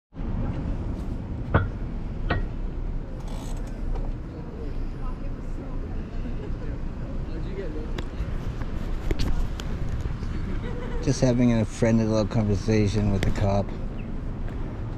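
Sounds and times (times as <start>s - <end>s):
street traffic rumble: 0.1s - 14.9s.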